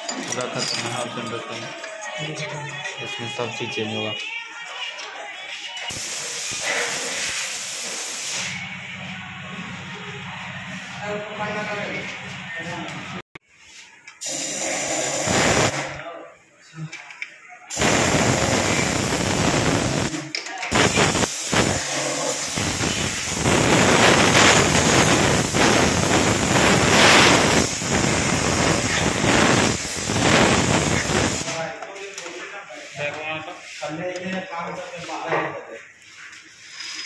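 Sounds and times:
compressed-air spray gun hissing: 5.9s - 8.5s, 14.2s - 15.9s, 17.7s - 20.1s, 20.7s - 31.5s.

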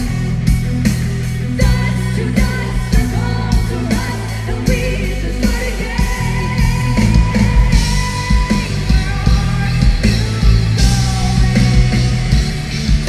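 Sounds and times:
bass guitar: 0.0s - 13.0s
drum kit with cymbal hits: 0.0s - 13.0s
electric guitar: 0.0s - 13.0s
person singing: 1.5s - 13.0s.

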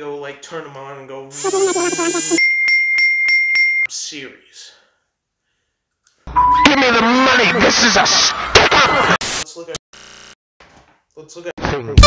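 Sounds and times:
man's drawn out voice: 1.3s - 2.4s.

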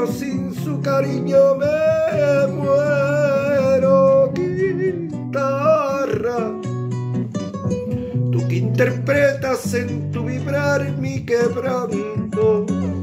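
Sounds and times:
man singing with vibrato: 0.0s - 6.9s, 8.2s - 13.0s
acoustic guitar: 0.0s - 13.0s.

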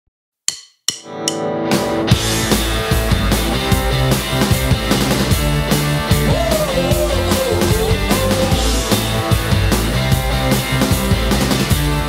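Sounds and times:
sharp percussive hits: 0.5s - 3.4s
drum beat: 0.5s - 12.0s.

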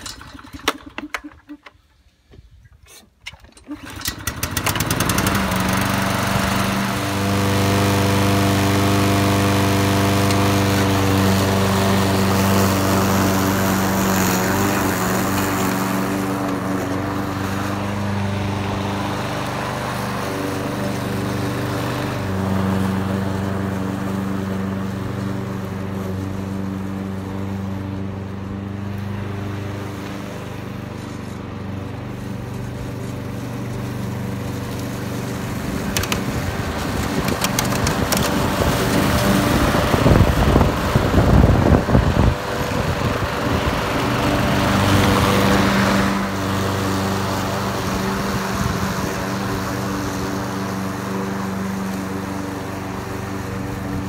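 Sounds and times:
lawn mower cutting grass: 0.0s - 1.8s, 2.9s - 54.0s
lawn mower engine starting: 0.0s - 54.0s.

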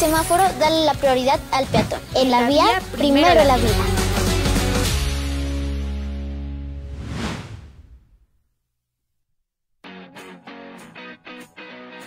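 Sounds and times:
whoosh sound effect: 6.8s - 8.2s.

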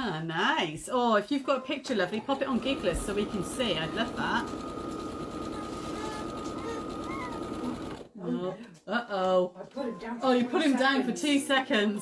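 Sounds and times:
electric sewing machine stitching: 2.1s - 8.1s.

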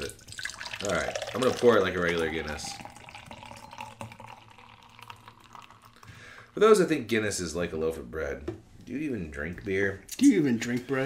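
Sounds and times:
beer pouring into glass: 0.0s - 6.8s.

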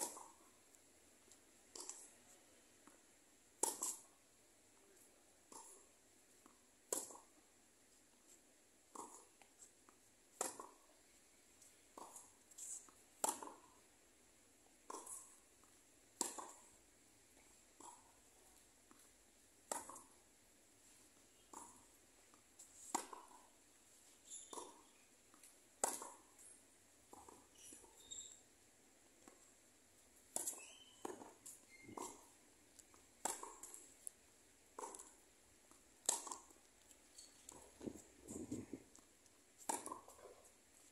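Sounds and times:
tennis ball bouncing: 0.0s - 0.8s, 1.6s - 2.1s, 2.8s - 4.1s, 5.5s - 7.4s, 8.9s - 10.9s, 11.9s - 13.9s, 14.7s - 16.8s, 17.4s - 20.2s, 20.8s - 26.5s, 27.1s - 28.4s, 29.2s - 29.6s, 30.2s - 40.9s
racquets hitting tennis ball: 0.0s - 2.1s, 2.8s - 4.1s, 5.5s - 7.4s, 8.9s - 10.9s, 11.9s - 13.9s, 14.7s - 16.8s, 17.5s - 20.2s, 21.2s - 28.4s, 29.2s - 40.9s.

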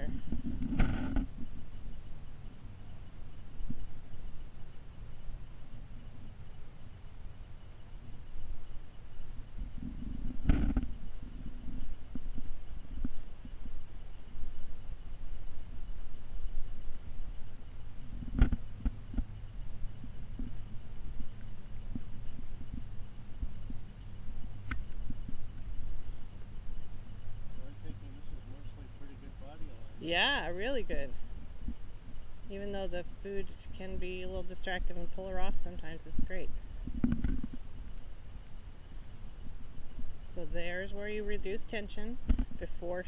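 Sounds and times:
microphone handling rumble: 0.0s - 2.7s, 8.2s - 43.0s
wind noise on microphone: 0.0s - 6.4s, 7.9s - 28.5s, 30.0s - 43.0s.

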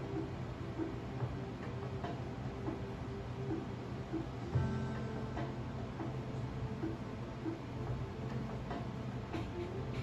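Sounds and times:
television music: 0.0s - 10.0s.

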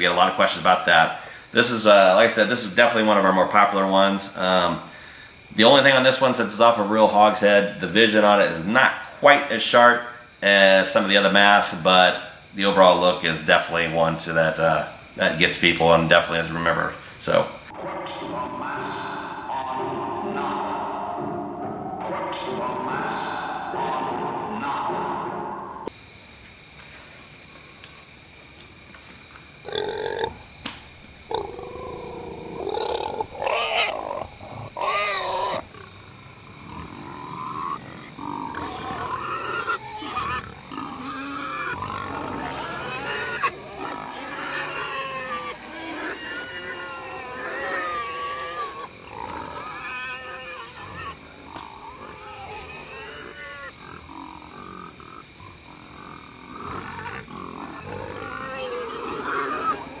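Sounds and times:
pig-like squealing and grunting: 29.7s - 30.4s, 31.3s - 60.0s.

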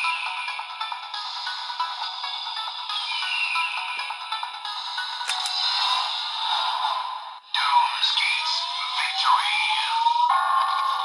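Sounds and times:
toy playing electronic music: 0.0s - 11.0s
falling whistle-like sweep: 3.0s - 3.8s.

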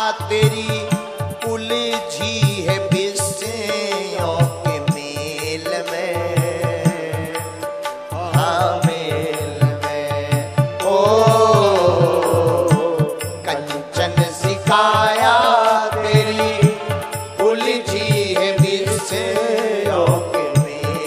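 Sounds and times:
drums keeping a steady beat: 0.0s - 21.0s
man singing into a microphone: 0.0s - 21.0s
sustained instrumental accompaniment: 0.0s - 21.0s.

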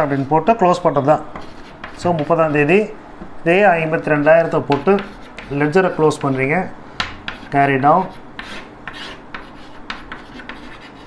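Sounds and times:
chalk scratching on blackboard: 0.0s - 0.6s, 1.4s - 2.8s, 4.0s - 6.6s, 7.3s - 11.0s.

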